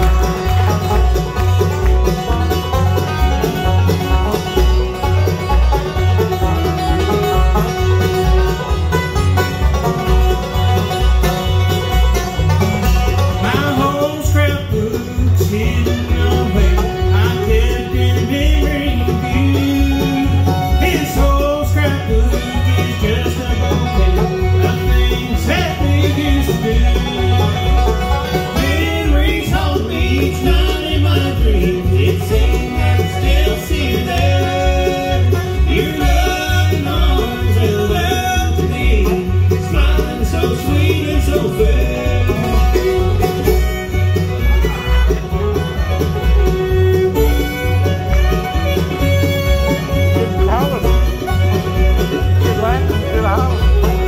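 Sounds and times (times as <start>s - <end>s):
banjo rolls: 0.0s - 54.0s
guitar: 0.0s - 54.0s
sliding lead melody: 0.0s - 54.0s.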